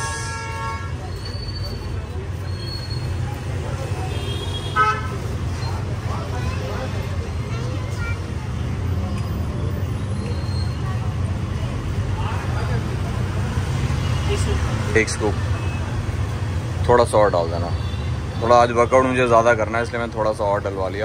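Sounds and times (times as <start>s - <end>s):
vehicle horn: 0.0s - 1.0s, 4.1s - 5.2s
faint voices: 0.0s - 21.0s
traffic rumble: 0.0s - 21.0s.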